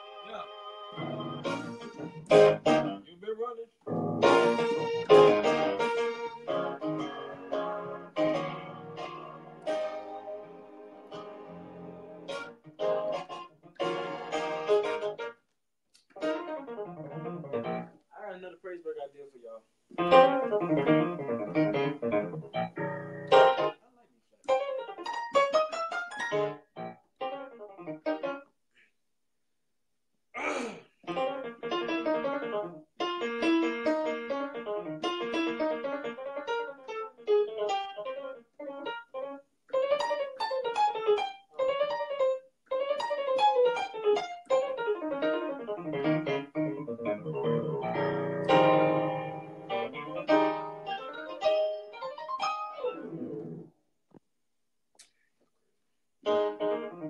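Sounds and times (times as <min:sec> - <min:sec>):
electronic keyboard piano chords: 0:00.0 - 0:03.1, 0:03.9 - 0:15.4, 0:16.2 - 0:18.0, 0:20.0 - 0:23.8, 0:24.5 - 0:28.4, 0:31.1 - 0:53.7, 0:56.3 - 0:57.0.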